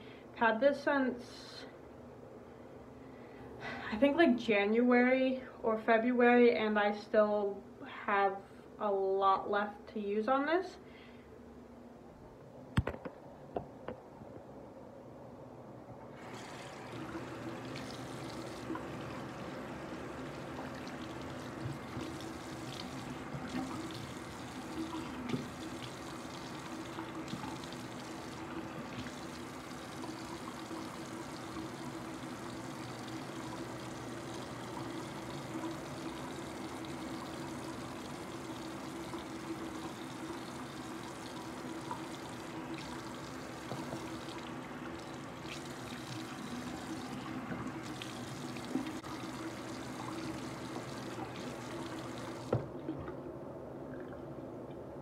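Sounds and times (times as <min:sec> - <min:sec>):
sink tap running: 0:16.2 - 0:53.1.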